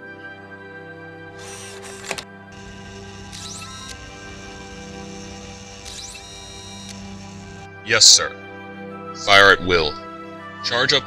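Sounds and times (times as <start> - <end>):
background film score: 1.3 - 11.0
sharp click: 1.4 - 7.7
short gliding electronic tones: 2.6 - 7.7.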